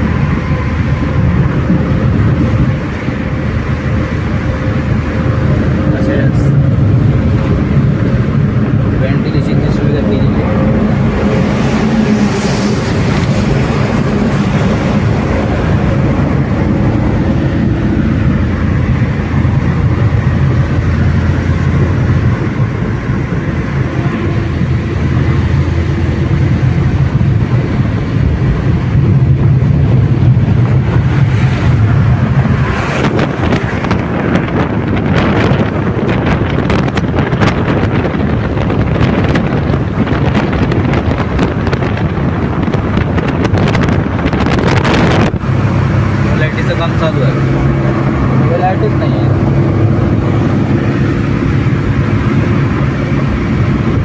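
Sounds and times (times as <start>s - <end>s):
car engine and tyre drone: 0.0s - 54.0s
wind buffeting microphone: 0.0s - 54.0s.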